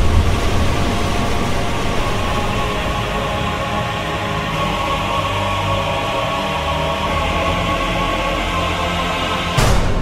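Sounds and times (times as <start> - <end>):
dark music tones: 0.0 - 10.0
boom: 9.6 - 10.0.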